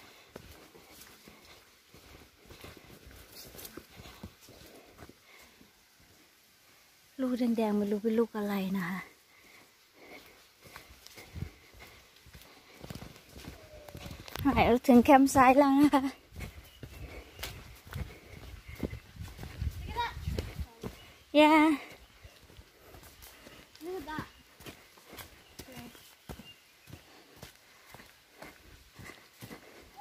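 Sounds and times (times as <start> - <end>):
footsteps on dirt path: 0.0 - 30.0.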